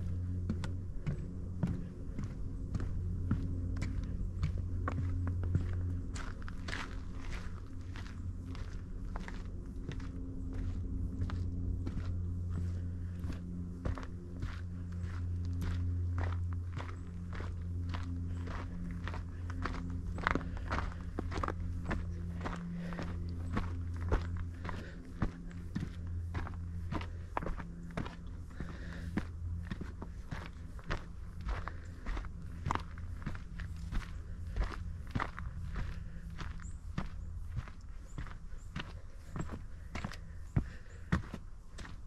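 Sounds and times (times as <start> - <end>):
footsteps on dirt trail: 0.0 - 42.0
low steady hum: 0.0 - 42.0.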